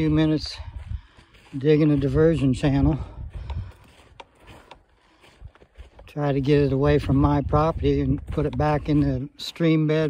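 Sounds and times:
footsteps on sandy dirt: 0.0s - 10.0s.

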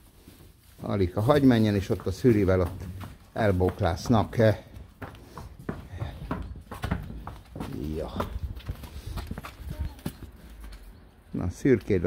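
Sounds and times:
horse hooves on hard floor: 0.0s - 10.9s.

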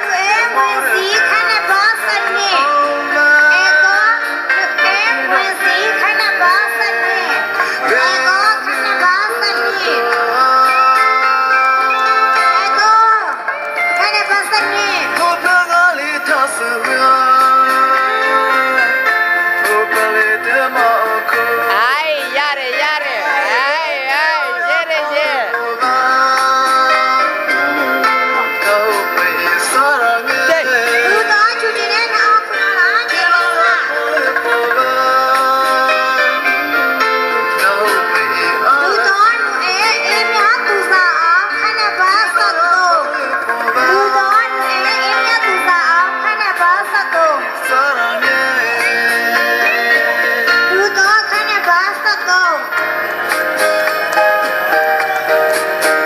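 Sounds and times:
music with singing voice: 0.0s - 56.0s.

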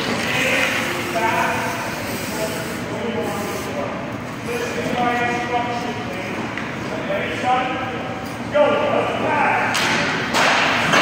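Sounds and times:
skate blades scraping ice: 0.0s - 2.8s.

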